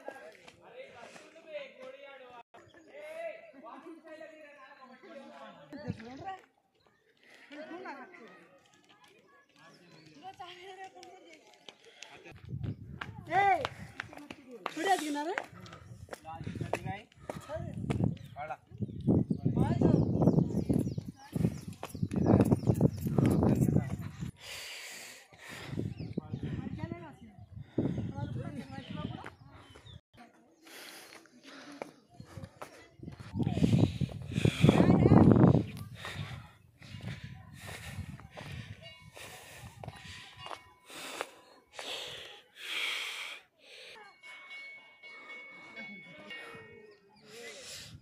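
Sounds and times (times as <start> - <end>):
group of people talking: 0.0 - 48.0.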